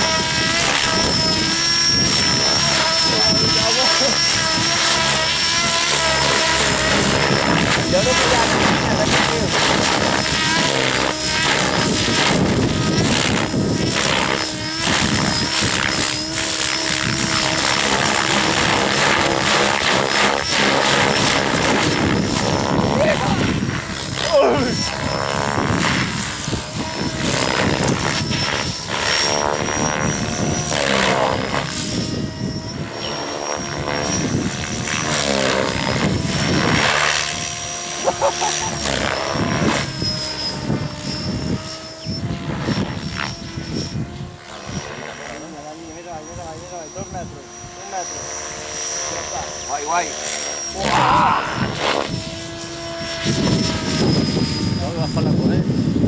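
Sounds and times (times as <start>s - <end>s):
model helicopter rotor and motor whining: 0.0s - 56.0s
steady high whine: 0.0s - 56.0s.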